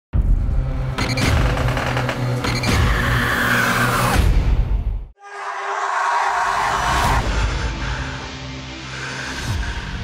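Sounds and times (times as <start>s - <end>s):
low drone: 6.5s - 10.0s.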